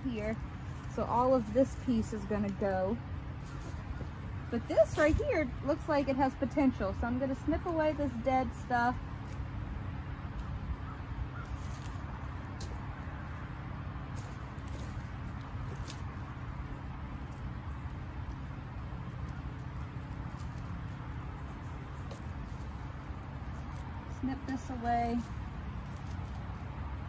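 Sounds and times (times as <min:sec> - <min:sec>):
pruning shears snipping stems: 0:00.0 - 0:09.4, 0:18.2 - 0:27.0
leaves rustling: 0:00.0 - 0:27.0
low outdoor rumble: 0:00.0 - 0:27.0.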